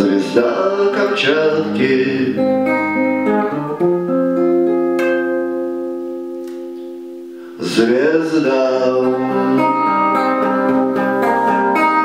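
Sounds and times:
guitar chord ringing: 0.0s - 12.0s.

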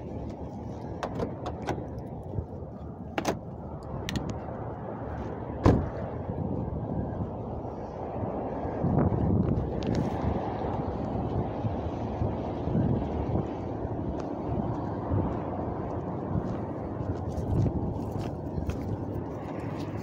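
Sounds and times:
wind on microphone: 0.0s - 20.0s
loud thump: 5.6s - 6.0s.

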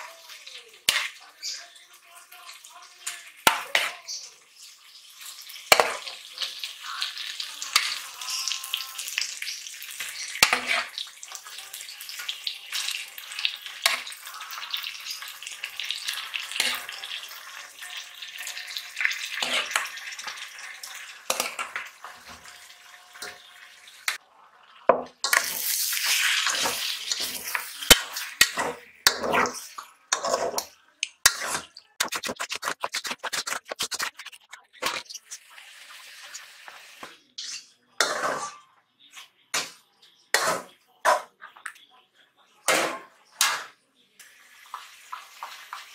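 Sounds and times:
chicken sizzling in oil: 0.0s - 37.7s, 43.3s - 45.9s
spoon scraping and knocking pot: 26.5s - 35.2s.

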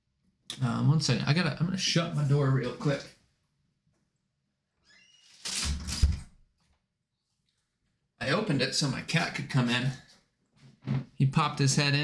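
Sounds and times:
door squeak: 4.8s - 6.3s
door closing thud: 5.6s - 6.3s.

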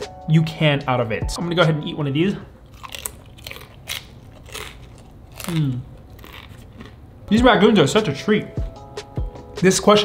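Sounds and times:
person chewing crisp food: 2.6s - 7.1s.

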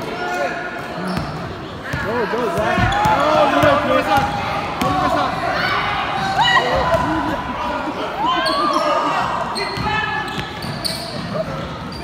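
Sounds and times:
voices echoing in hall: 0.0s - 12.0s
sneakers squeaking: 0.2s - 7.4s, 8.2s - 12.0s
basketball bouncing: 2.6s - 5.2s.

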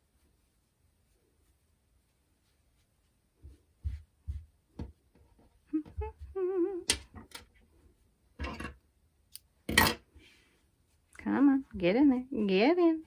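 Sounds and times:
hands rustling and tapping fabric: 0.0s - 8.3s
woman humming: 5.7s - 7.0s.

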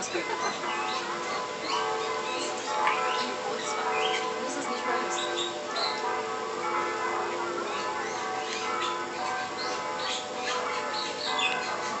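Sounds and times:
small birds chirping: 0.4s - 6.1s, 7.7s - 11.9s.

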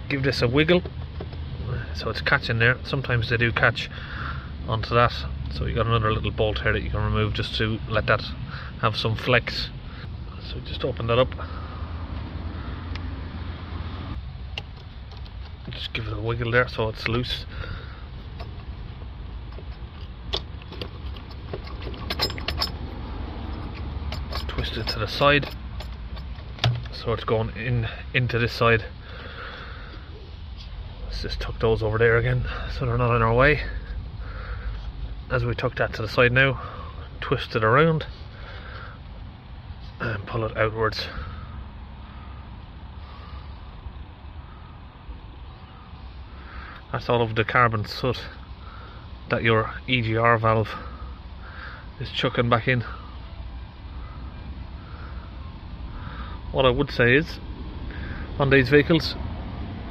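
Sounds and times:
steady low rumble: 0.0s - 59.9s
throttle body clicks and rattles: 0.1s - 1.5s, 14.4s - 27.5s.

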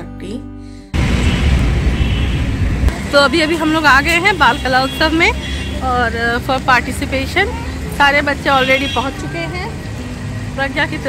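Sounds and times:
low rumble of street noise: 1.0s - 11.0s.

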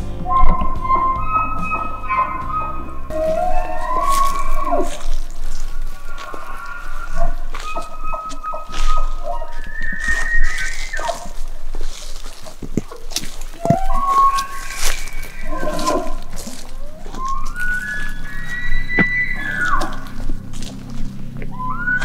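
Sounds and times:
background music: 0.0s - 5.2s
elk bugling: 0.0s - 22.0s.

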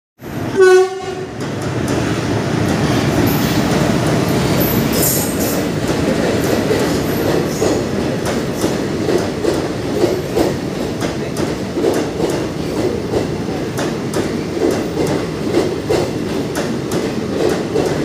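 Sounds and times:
train horn blast: 0.5s - 1.4s
train wheels clacking over rail joints: 0.7s - 18.0s.

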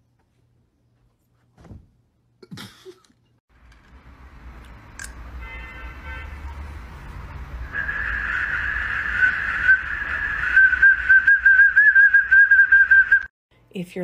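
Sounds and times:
plastic whistle warbling: 7.7s - 13.3s.

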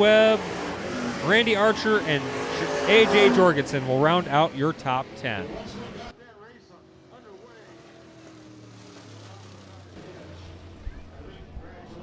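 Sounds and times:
race car engine running: 0.0s - 12.0s.

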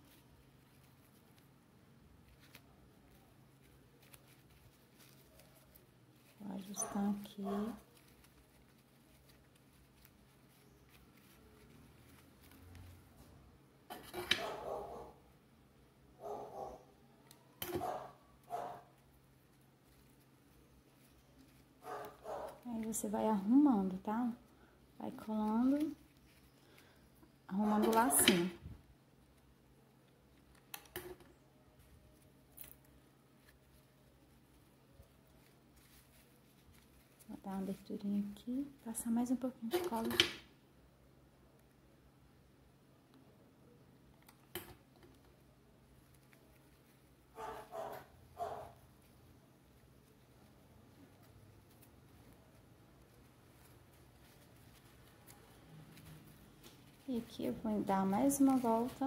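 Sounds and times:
ribbon rustling and clicking: 0.0s - 14.8s, 17.2s - 40.5s, 44.0s - 59.0s.

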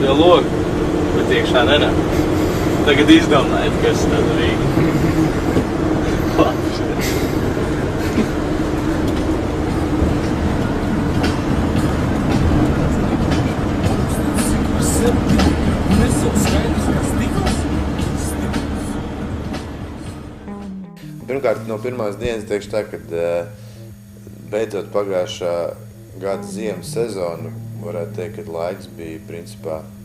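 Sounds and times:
van driving rumble: 0.0s - 30.0s.

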